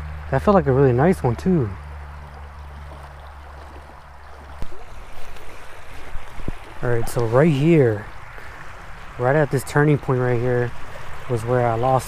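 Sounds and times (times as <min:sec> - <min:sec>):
low hum: 0:00.0 - 0:11.8
creek water running: 0:00.0 - 0:12.0.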